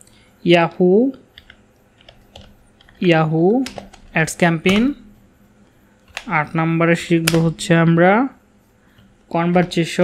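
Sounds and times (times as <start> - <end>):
computer keyboard keystrokes: 1.3 - 3.0, 3.6 - 4.9, 6.1 - 6.4.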